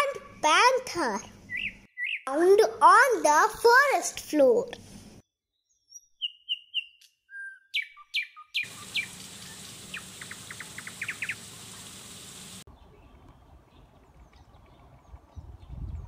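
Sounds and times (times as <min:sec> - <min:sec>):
birds chirping and trilling: 0:01.3 - 0:02.3, 0:05.5 - 0:16.0.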